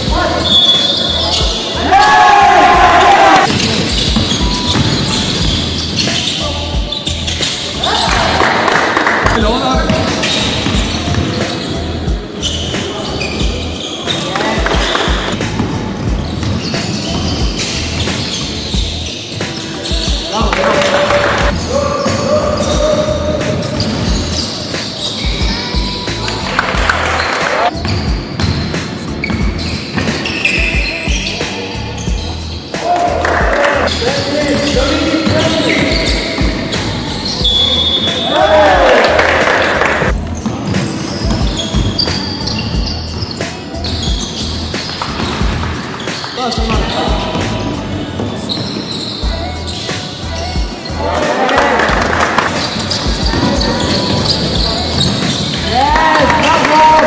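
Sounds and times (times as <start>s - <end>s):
basketballs bouncing on wooden floor: 2.8s - 31.4s, 32.0s - 38.2s, 38.8s - 51.0s, 51.6s - 57.0s
players calling out: 28.7s - 57.0s.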